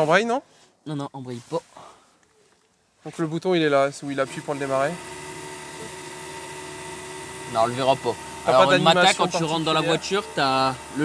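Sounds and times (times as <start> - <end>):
mechanical hum with high whine: 4.5 - 11.0.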